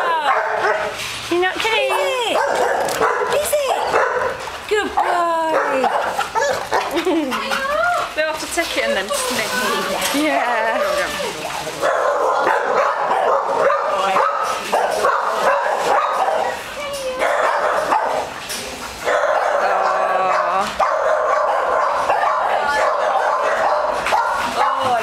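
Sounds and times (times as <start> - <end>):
dogs barking and yipping: 0.0 - 25.0.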